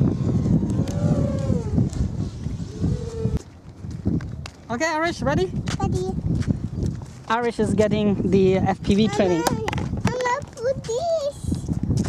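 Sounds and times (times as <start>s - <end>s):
quadcopter motors whining: 0.0s - 3.5s
wind buffeting microphone: 0.0s - 12.0s.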